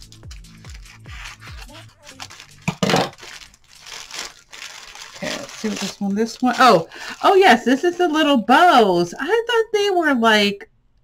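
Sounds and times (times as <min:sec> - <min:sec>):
plastic bag ripping: 0:00.0 - 0:06.8
plastic bag crinkling: 0:00.0 - 0:07.6.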